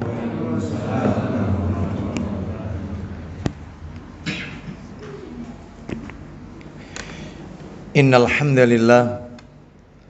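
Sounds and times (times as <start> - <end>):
dove cooing: 4.2 - 5.8.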